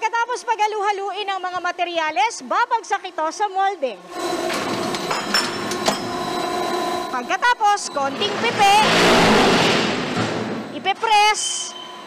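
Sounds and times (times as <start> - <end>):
block-making machine rattling: 4.1 - 7.3.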